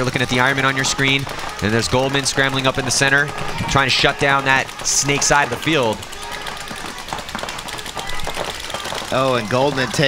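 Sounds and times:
outdoor field noise: 0:00.0 - 0:10.0
paintball markers firing: 0:00.0 - 0:10.0.

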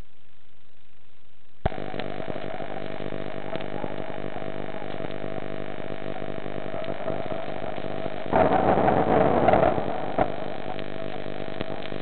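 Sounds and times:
steady multi-tone hum: 0:00.0 - 0:12.0.

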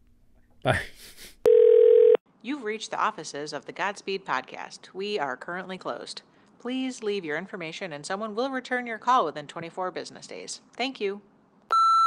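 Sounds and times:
electronic telephone beep: 0:01.5 - 0:02.2, 0:11.7 - 0:12.0.

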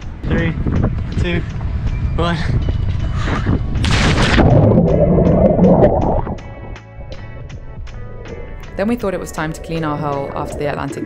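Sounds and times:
person splashing into water: 0:03.8 - 0:06.4
underwater rushing and bubbling: 0:03.8 - 0:06.8.

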